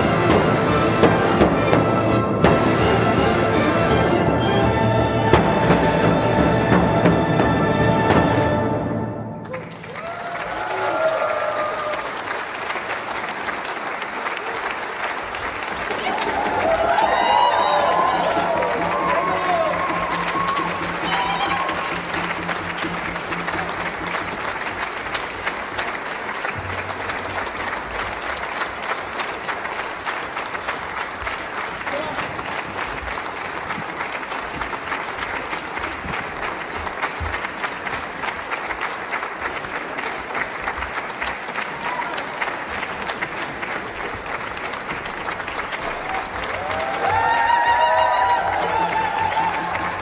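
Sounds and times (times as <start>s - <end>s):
audience applauding: 9.3s - 50.0s.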